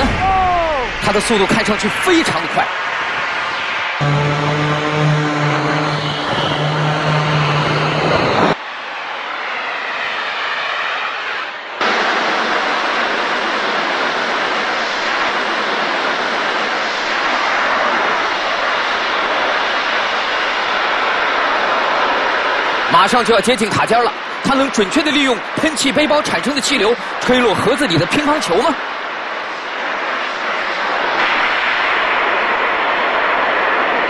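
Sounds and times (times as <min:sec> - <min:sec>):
jetpack thrust rushing: 0:01.7 - 0:08.6.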